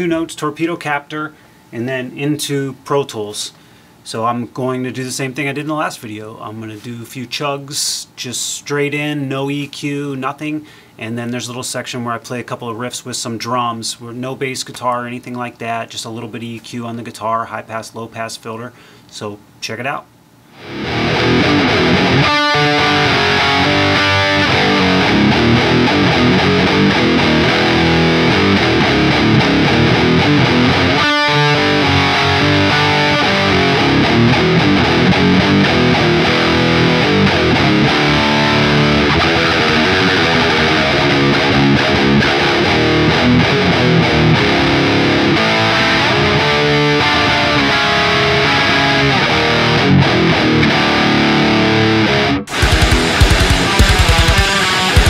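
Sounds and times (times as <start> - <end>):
distorted electric guitar riffs: 20.5 - 55.0.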